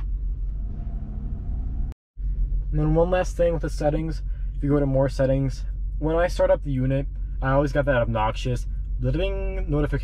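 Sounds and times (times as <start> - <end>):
engine idling rumble: 0.0 - 10.0.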